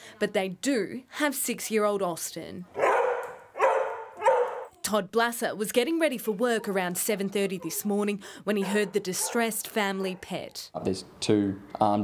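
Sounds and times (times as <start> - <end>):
dog barking: 2.8 - 4.7, 8.6 - 9.5.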